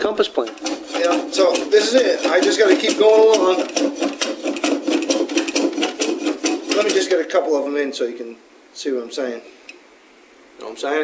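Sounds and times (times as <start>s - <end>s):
hand plane scraping wood: 0.4s - 7.4s.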